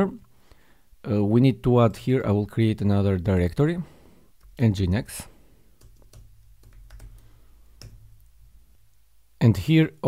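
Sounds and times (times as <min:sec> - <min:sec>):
computer keyboard typing: 0:05.8 - 0:08.3.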